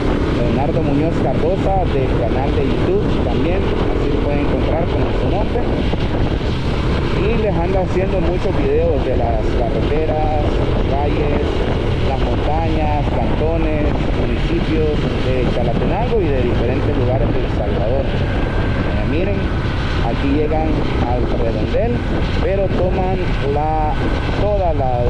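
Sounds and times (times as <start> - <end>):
wind rushing on microphone: 0.0 - 25.0
man talking: 0.3 - 5.9, 7.1 - 18.2, 18.9 - 25.0.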